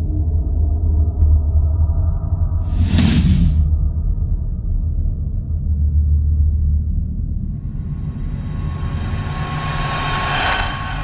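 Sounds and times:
deep rumble: 0.0s - 11.0s
rushing whoosh: 8.0s - 11.0s.

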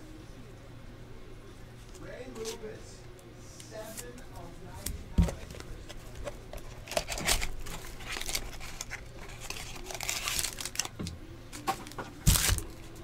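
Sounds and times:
wrapper crinkling and tearing: 5.6s - 13.0s.

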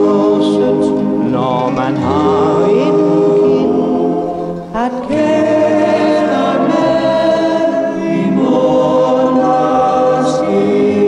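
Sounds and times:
man singing lead: 0.0s - 8.4s
backing choir singing: 0.0s - 11.0s
musical accompaniment: 0.0s - 11.0s.

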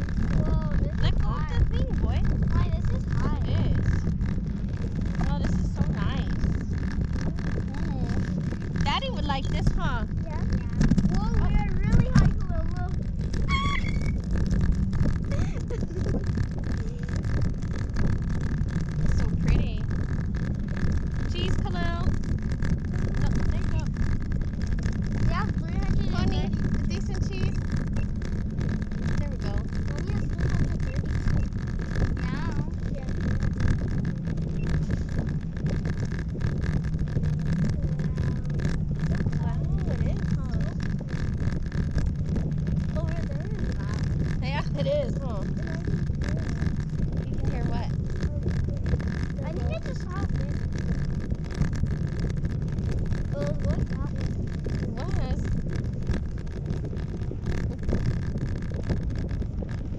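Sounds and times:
faint voices: 0.0s - 59.8s
wind buffeting microphone: 0.0s - 59.9s.

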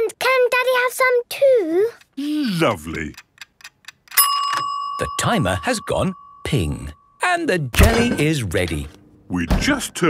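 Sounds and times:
timer bell ping: 4.2s - 7.2s.

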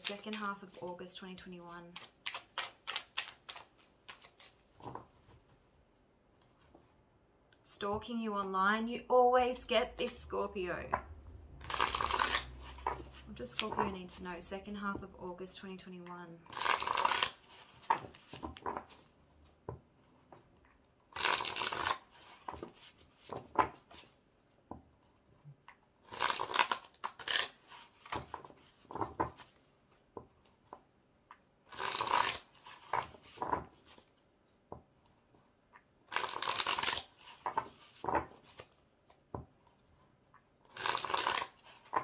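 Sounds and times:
cards riffle-shuffled: 1.7s - 5.5s, 11.6s - 14.0s, 16.5s - 19.1s, 21.1s - 24.2s, 26.1s - 29.6s, 31.7s - 34.1s, 36.1s - 38.8s, 40.7s - 42.0s.

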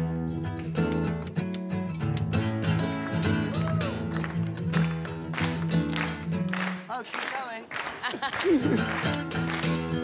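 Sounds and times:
acoustic guitar strumming and picking: 0.0s - 7.6s, 8.2s - 10.0s.

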